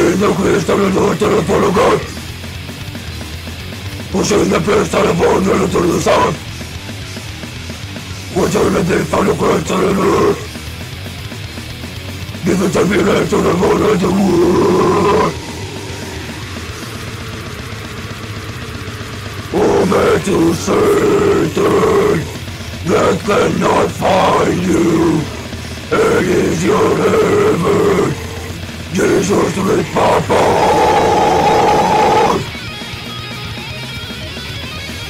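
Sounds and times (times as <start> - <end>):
harsh metal vocal: 0.0 - 32.9
distorted guitars: 0.0 - 35.0
fast driving drums: 0.0 - 35.0.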